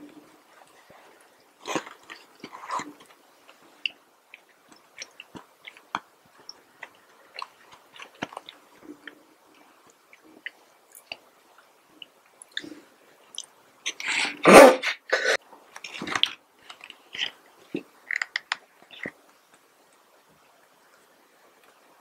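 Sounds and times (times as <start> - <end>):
chewing with mouth clicks: 3.8 - 9.2, 15.8 - 19.2.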